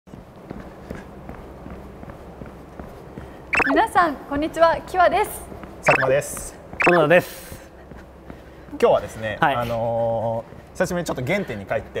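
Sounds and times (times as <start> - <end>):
footsteps in tennis shoes: 0.1 - 4.8, 5.5 - 11.5
low room hum: 0.1 - 12.0.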